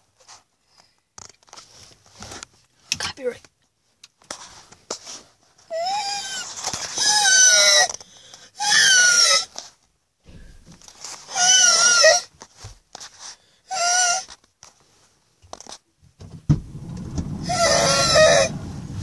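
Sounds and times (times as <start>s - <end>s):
raspy screeching calls: 17.4s - 19.0s.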